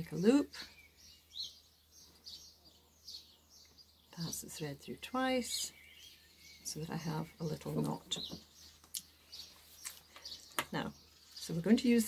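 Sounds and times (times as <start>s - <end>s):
bird chirps: 0.1s - 12.0s.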